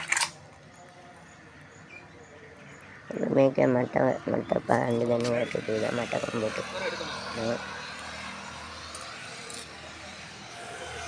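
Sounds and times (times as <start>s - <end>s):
outdoor background noise: 0.0s - 11.0s
person speaking: 3.1s - 7.6s.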